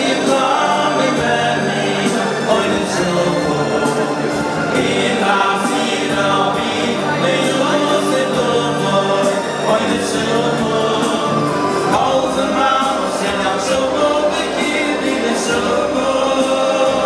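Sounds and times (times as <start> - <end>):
male choir singing in harmony: 0.0 - 17.0.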